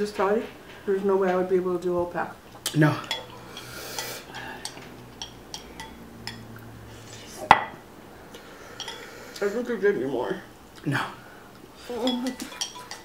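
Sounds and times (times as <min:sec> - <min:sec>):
chopsticks tapping glass bowls: 0:02.6 - 0:06.7, 0:08.8 - 0:09.1, 0:12.0 - 0:13.0.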